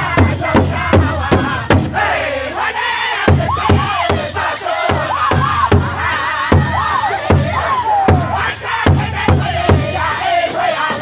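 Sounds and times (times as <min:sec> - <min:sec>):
large drum beating: 0:00.0 - 0:02.2, 0:03.2 - 0:10.2
group singing in high voices: 0:00.0 - 0:11.0.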